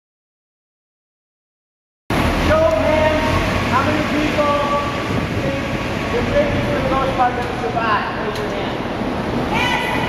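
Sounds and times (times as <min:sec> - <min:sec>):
people talking: 0:02.4 - 0:08.8.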